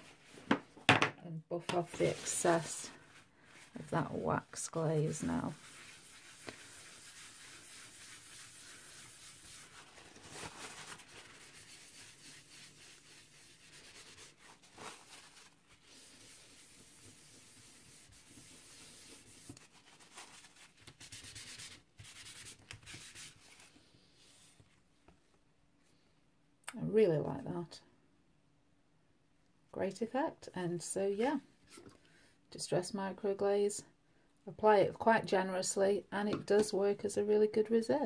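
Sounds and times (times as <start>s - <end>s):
paper towel scrubbing card: 1.6s - 24.6s.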